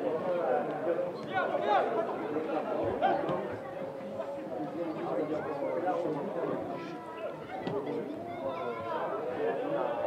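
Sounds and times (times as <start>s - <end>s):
people shouting and chattering: 0.0s - 10.0s.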